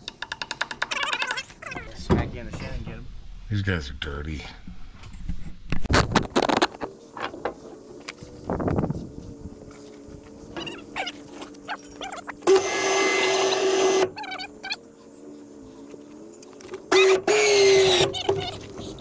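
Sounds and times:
winch motor running: 10.1s - 19.0s.

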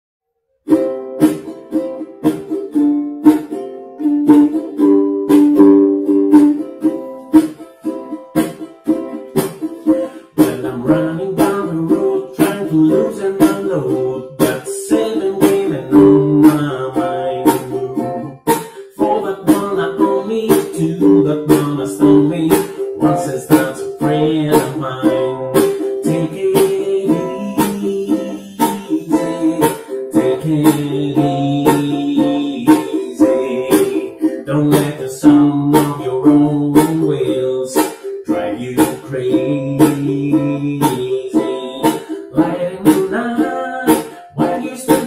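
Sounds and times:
ukulele strumming: 0.6s - 45.0s.

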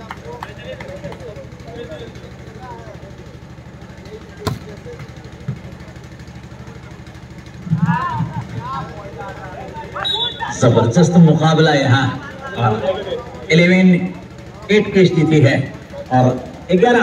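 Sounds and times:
steady low hum: 0.0s - 17.0s
people shouting: 7.6s - 10.8s.

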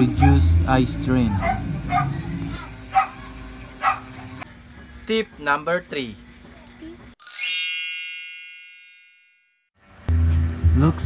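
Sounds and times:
bright metallic chime: 7.2s - 9.6s.

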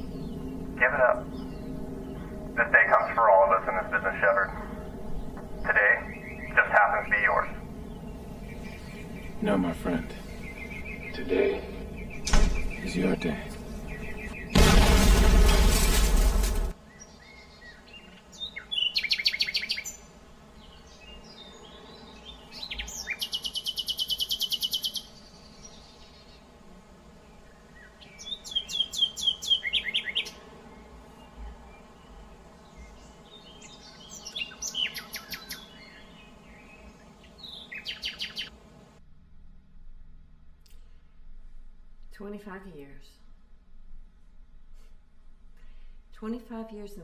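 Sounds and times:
songbirds singing: 0.0s - 14.6s, 16.7s - 38.9s
faint low hum: 0.0s - 18.5s.

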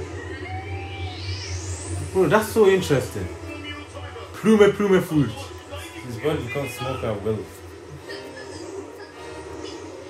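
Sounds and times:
thin tone sweeping upward: 0.0s - 5.5s
low steady hum: 0.0s - 10.0s.

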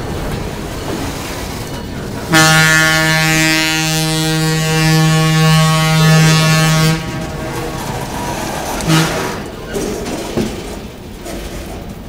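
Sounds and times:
freight cars rumbling past: 0.0s - 12.0s
locomotive air horn blast: 2.3s - 9.8s.

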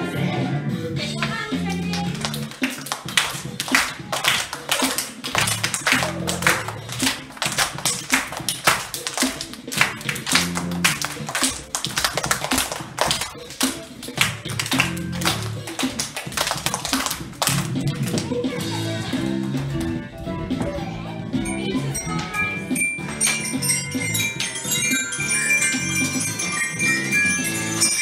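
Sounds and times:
upbeat funk music: 0.0s - 28.0s
children clapping: 1.2s - 18.4s, 19.0s - 20.0s.

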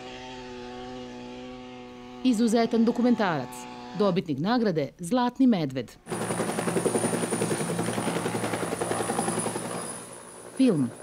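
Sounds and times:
helicopter rotor beat: 6.0s - 11.0s.

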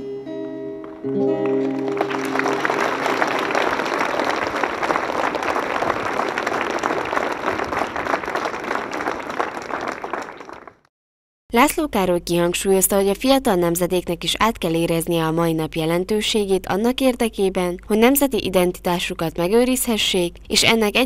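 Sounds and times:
acoustic guitar: 0.0s - 3.0s
audience clapping: 0.8s - 10.9s.

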